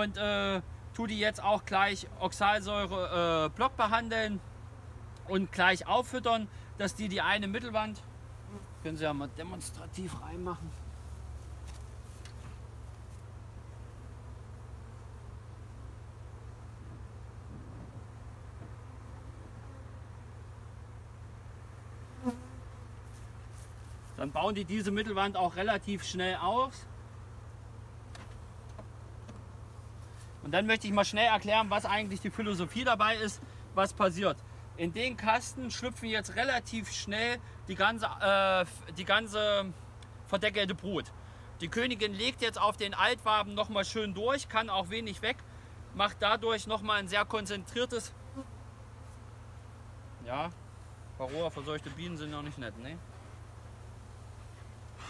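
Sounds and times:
steady low hum: 0.0 - 55.0
honeybee buzzing past: 7.4 - 37.6, 43.5 - 55.0.

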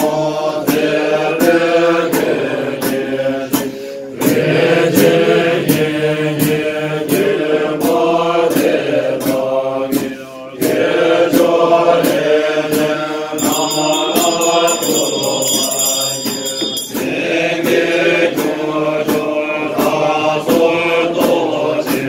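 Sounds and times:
men chanting in unison: 0.0 - 22.0
sharp rhythmic beats: 12.0 - 20.6
high ringing: 13.4 - 17.6.

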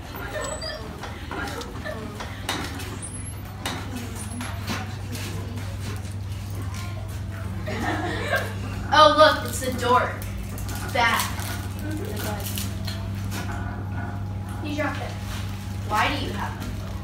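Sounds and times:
children laughing: 0.0 - 3.0, 7.4 - 8.9
children chattering: 0.0 - 10.2
steady low hum: 0.0 - 17.0.

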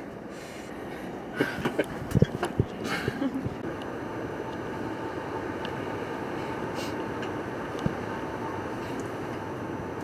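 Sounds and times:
train running noise inside carriage: 0.0 - 10.0.

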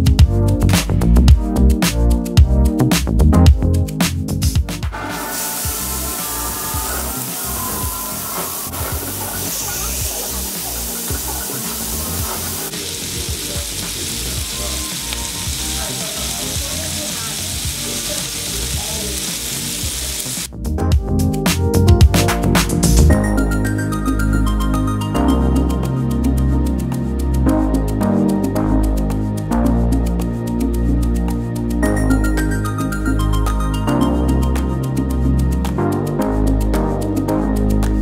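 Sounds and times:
music: 0.0 - 38.0
steak sizzling in a pan: 5.1 - 20.5.

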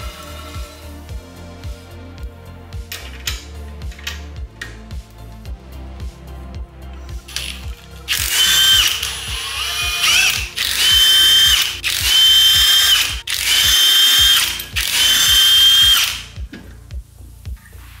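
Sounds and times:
impact wrench spinning lug nuts: 7.3 - 16.3.

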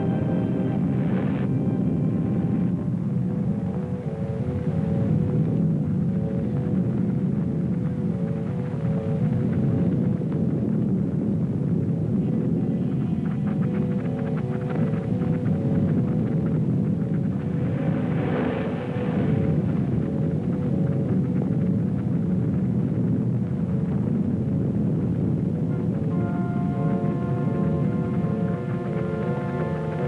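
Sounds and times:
slow low orchestral music: 0.0 - 7.2, 25.7 - 30.0
deep steady rumble: 0.0 - 30.0.

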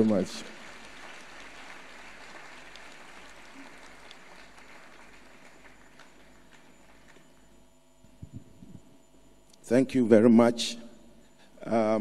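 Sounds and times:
large audience applause: 0.0 - 7.2.

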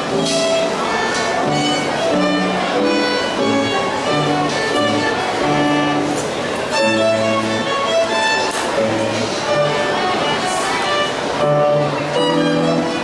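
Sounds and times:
solo violin melody: 0.0 - 13.0.

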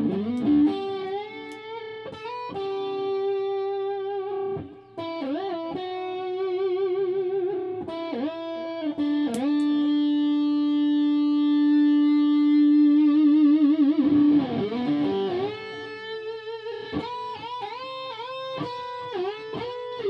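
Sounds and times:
electric guitar with whammy bar: 0.0 - 20.0.

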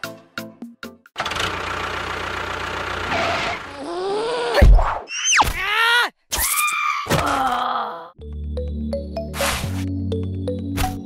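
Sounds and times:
light music with ticking beat: 8.2 - 11.0.

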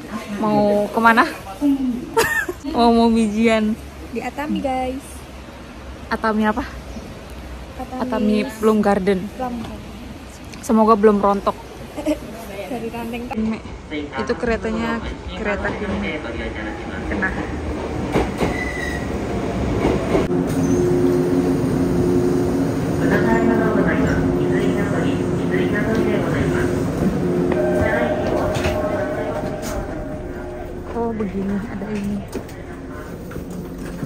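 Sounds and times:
train rumbling: 15.0 - 34.0
wheels and brakes squealing: 18.4 - 19.2, 20.6 - 21.0.

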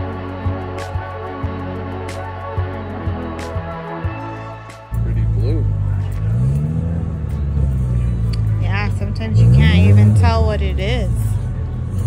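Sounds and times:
car engine revving: 0.0 - 12.0
car engine idling: 0.1 - 12.0.

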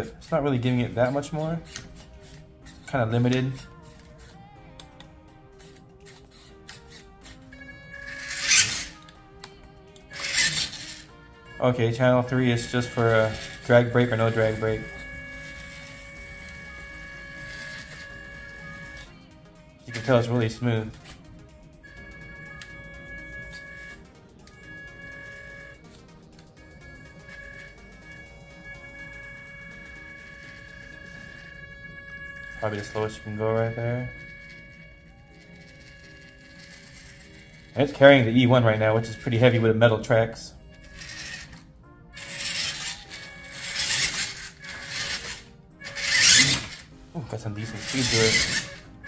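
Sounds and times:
toy truck motor whining: 0.0 - 49.0.

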